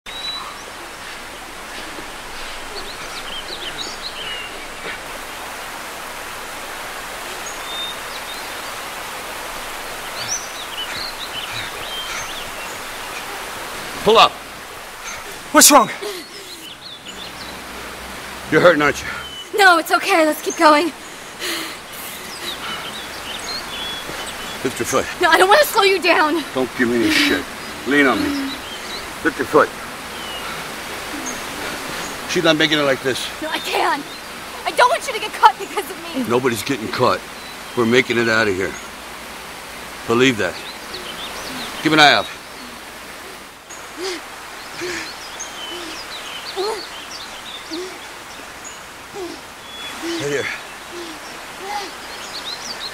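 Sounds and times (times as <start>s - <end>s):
outdoor background hiss: 0.1s - 52.9s.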